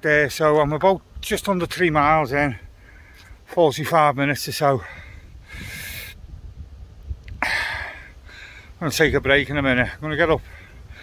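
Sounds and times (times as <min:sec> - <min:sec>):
wind rumbling on microphone: 0:00.5 - 0:03.5, 0:04.7 - 0:11.0
man breathing out: 0:02.7 - 0:03.4, 0:04.8 - 0:06.3, 0:07.3 - 0:08.8.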